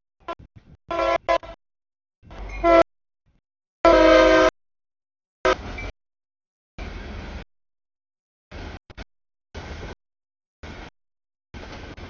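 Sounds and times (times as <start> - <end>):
locomotive air horn blasts: 0.2 - 1.6, 2.3 - 2.9, 3.8 - 4.6, 5.4 - 5.9
locomotive rumble: 2.2 - 4.5, 5.5 - 5.9, 6.8 - 7.5, 8.5 - 10.0, 10.6 - 12.0.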